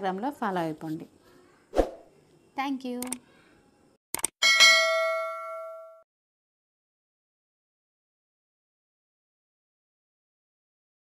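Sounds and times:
bell-like ding: 0:04.4 - 0:06.1.

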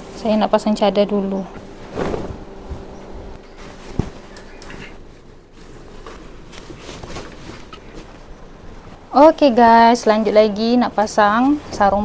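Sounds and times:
bed sheet rustling: 0:01.6 - 0:04.3, 0:05.0 - 0:09.0.

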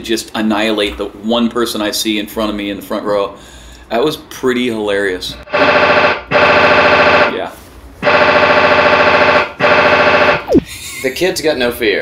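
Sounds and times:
downward pitch swoop: 0:10.5 - 0:10.8.

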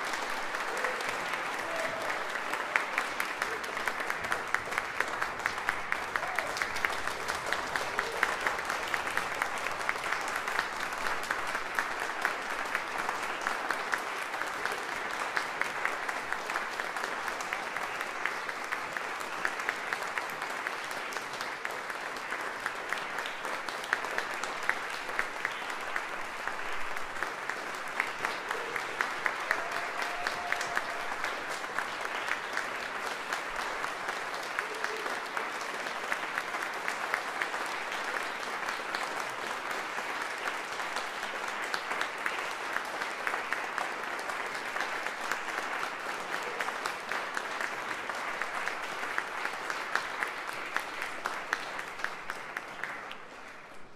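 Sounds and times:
audience applauding: 0:00.0 - 0:53.9.

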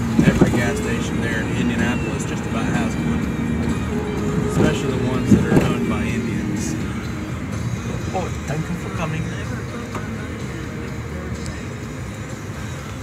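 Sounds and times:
car engine and road noise: 0:00.0 - 0:13.0
music from car stereo: 0:00.0 - 0:13.0
people talking: 0:00.2 - 0:03.2, 0:04.4 - 0:07.0, 0:07.9 - 0:10.4.

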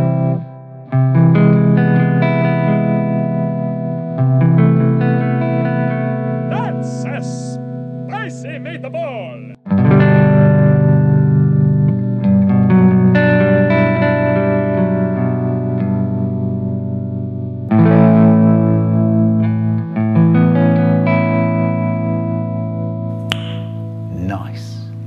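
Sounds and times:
electric guitar chords: 0:00.0 - 0:24.1.

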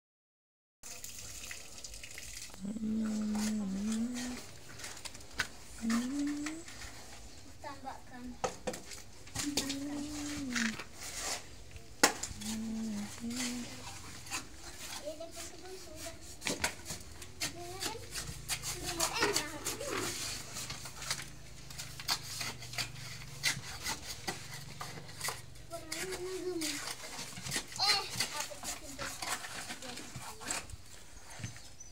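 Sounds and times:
hand tools scraping on brick: 0:02.6 - 0:31.9.

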